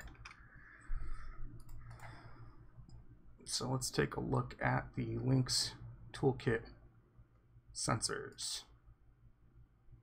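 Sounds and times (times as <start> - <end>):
computer mouse clicks: 1.6 - 3.0.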